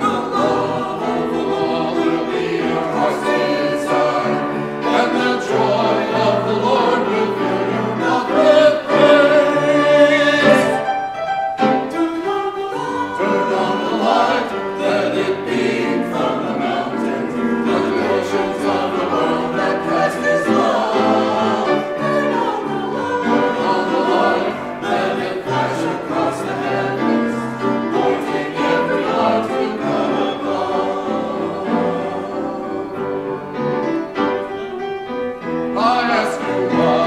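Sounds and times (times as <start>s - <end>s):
church choir singing: 0.0s - 37.0s
piano accompaniment: 0.0s - 37.0s.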